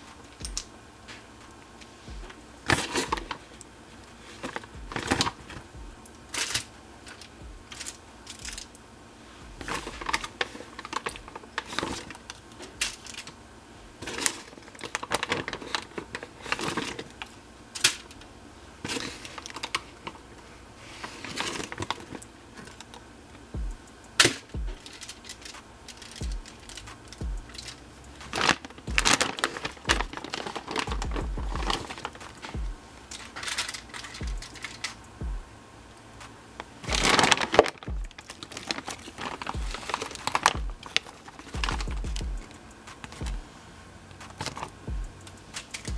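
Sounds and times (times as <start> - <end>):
aluminum foil crinkling: 0.0 - 8.8, 9.6 - 13.4, 14.0 - 23.0, 24.1 - 35.1, 36.6 - 43.3, 44.2 - 45.9.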